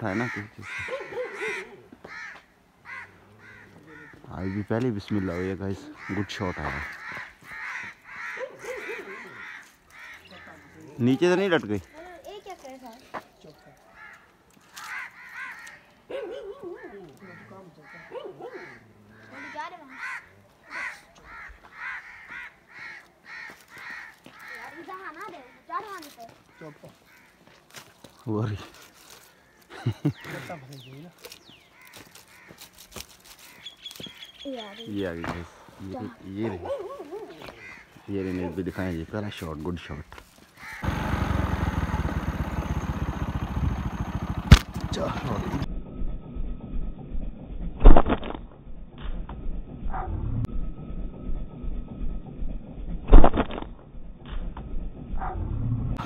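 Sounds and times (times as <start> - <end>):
crows cawing: 0.0 - 36.5, 37.1 - 45.6.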